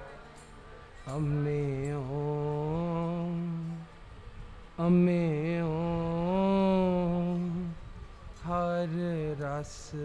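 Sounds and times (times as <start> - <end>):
man singing a long note: 1.1 - 3.9, 4.8 - 7.8.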